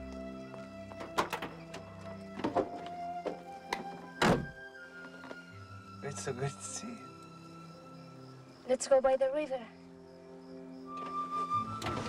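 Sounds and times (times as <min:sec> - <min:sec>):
soft film score music: 0:00.0 - 0:12.0
truck door shutting: 0:01.0 - 0:04.6, 0:10.9 - 0:12.0.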